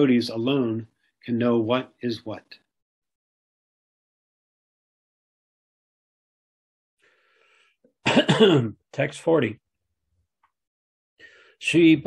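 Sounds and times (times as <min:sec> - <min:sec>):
man clearing throat: 0:08.0 - 0:08.8.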